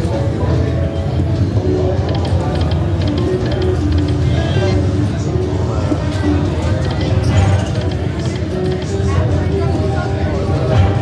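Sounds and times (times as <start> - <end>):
low casino floor hum: 0.0 - 11.0
slot machine electronic music: 0.0 - 11.0.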